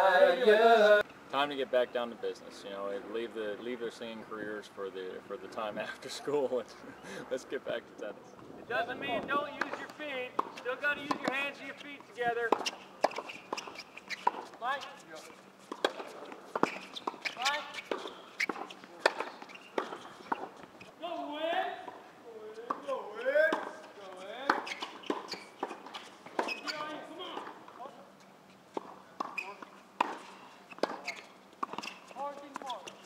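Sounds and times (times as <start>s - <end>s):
rackets striking tennis balls: 9.4s - 20.8s, 22.6s - 27.9s, 28.7s - 33.0s
balls bouncing: 9.6s - 14.6s
shoe squeaks on court: 12.6s - 21.0s, 24.4s - 27.5s, 28.8s - 33.0s.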